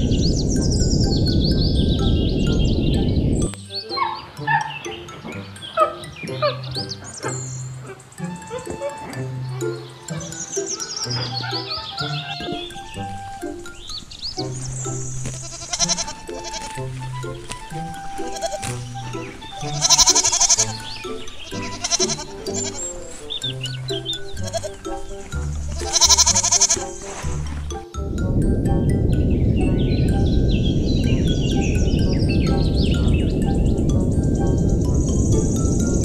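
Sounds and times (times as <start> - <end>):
background music: 0.0 - 36.0
goat bleating: 8.4 - 13.4, 14.4 - 23.2, 23.9 - 27.0.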